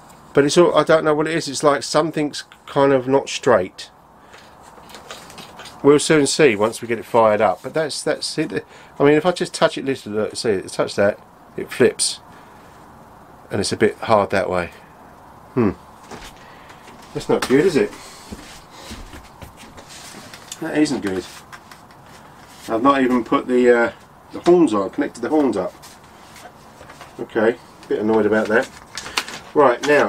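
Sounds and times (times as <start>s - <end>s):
handling noise on foam model: 4.3s - 8.6s, 16.0s - 30.0s
man speaking: 5.8s - 12.3s, 13.5s - 14.8s, 17.1s - 18.0s, 20.5s - 21.4s, 22.7s - 25.8s, 27.2s - 28.7s, 29.5s - 30.0s
soft knocks and scuffs: 17.0s - 23.4s.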